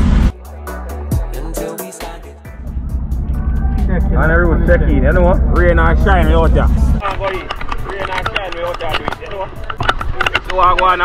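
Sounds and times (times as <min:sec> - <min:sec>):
low rumble: 0:02.5 - 0:08.8
people calling out: 0:03.3 - 0:06.0
clicks and taps on microphone: 0:07.0 - 0:11.0.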